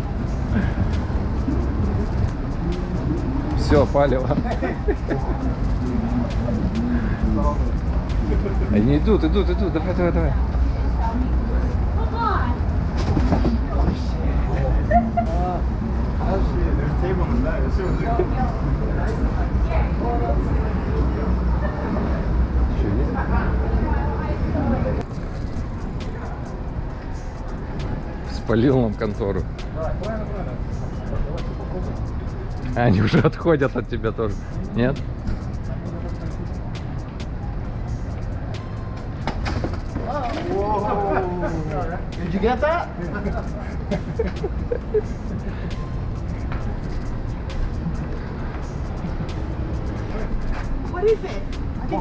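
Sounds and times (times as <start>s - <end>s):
people talking walking by: 0.0s - 52.0s
traffic rumble: 0.0s - 52.0s.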